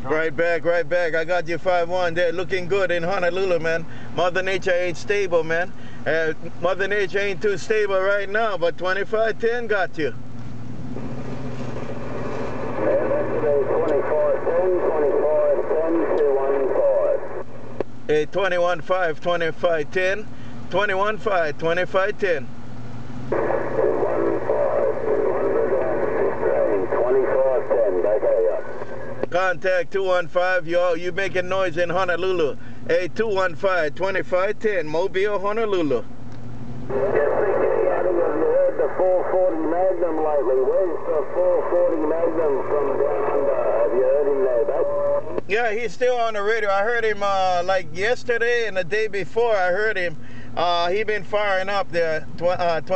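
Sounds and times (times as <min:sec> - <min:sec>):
man's voice over radio: 0:00.0 - 0:10.2, 0:12.7 - 0:17.5, 0:18.1 - 0:22.4, 0:23.3 - 0:36.0, 0:36.9 - 0:52.9
low hum: 0:00.0 - 0:52.9
radio static: 0:11.6 - 0:20.0, 0:23.3 - 0:32.6, 0:36.9 - 0:52.9.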